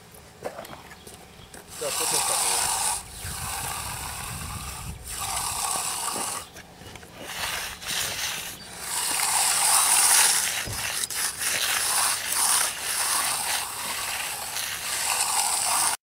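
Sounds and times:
metal edger scraping wet concrete: 1.7s - 16.0s.

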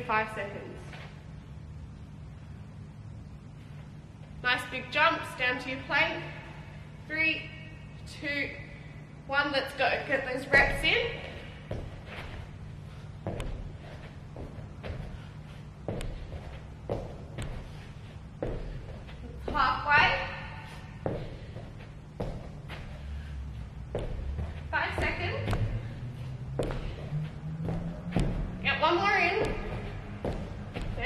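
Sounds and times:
thumps of hands and feet on floor: 23.9s - 31.0s.

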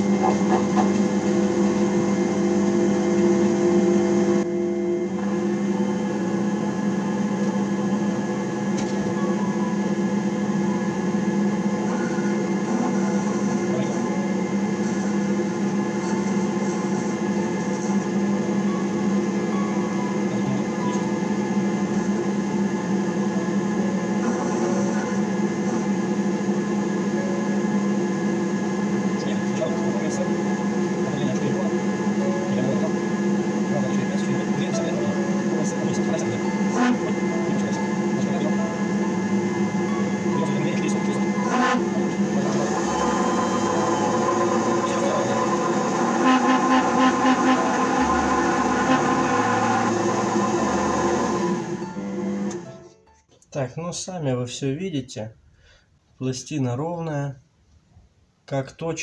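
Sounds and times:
lathe motor humming and whining: 0.0s - 52.7s.

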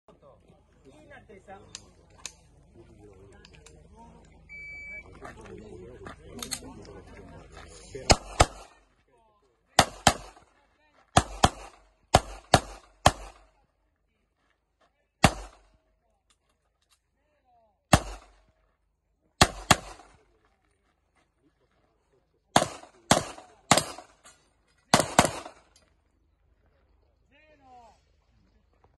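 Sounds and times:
faint voices: 0.2s - 9.8s
handgun shots with echo: 8.1s - 8.8s, 9.8s - 10.4s, 11.2s - 13.5s, 15.2s - 15.6s, 17.9s - 18.4s, 19.4s - 20.2s, 22.6s - 24.2s, 24.9s - 25.6s.

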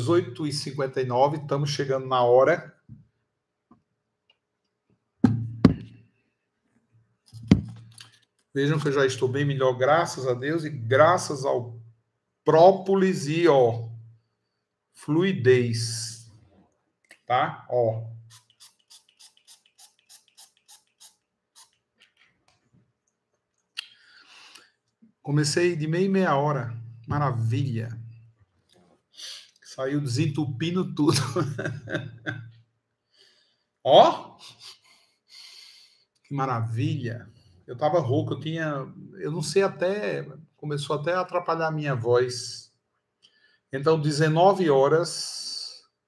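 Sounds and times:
hard objects knocking on desk: 5.2s - 5.9s, 7.4s - 7.8s.

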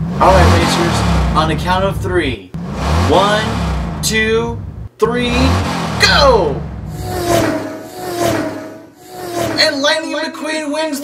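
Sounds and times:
racing car engine hum: 0.0s - 10.0s.

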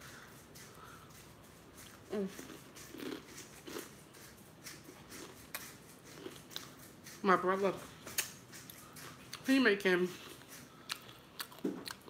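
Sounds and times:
person chewing crunchy chip: 0.1s - 7.2s, 8.0s - 9.5s, 10.1s - 12.0s.

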